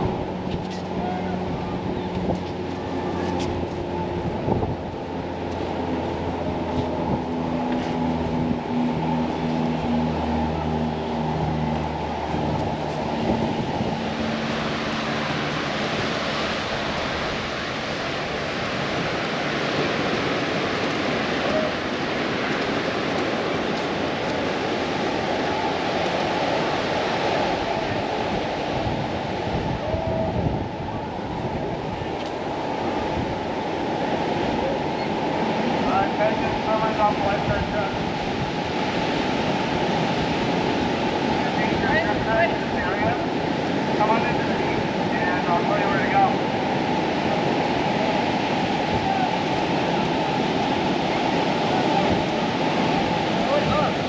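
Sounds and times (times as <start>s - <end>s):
surf breaking on a beach: 0.0s - 54.0s.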